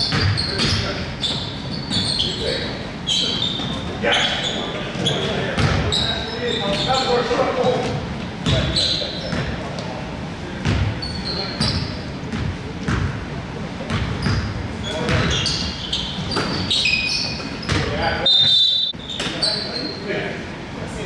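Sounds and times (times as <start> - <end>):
sneakers squeaking: 0.0 - 20.1
basketball bouncing on hardwood floor: 5.6 - 5.8.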